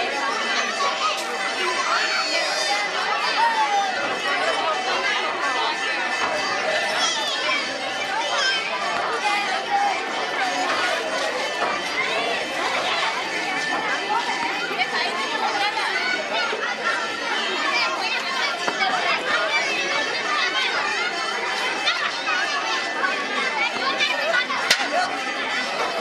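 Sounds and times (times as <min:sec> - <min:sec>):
crowd chatter: 0:00.0 - 0:26.0.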